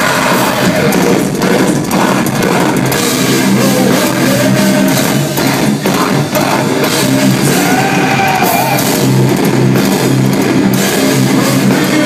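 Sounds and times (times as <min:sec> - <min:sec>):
distorted electric guitars: 0:00.0 - 0:12.0
drums: 0:00.0 - 0:12.0.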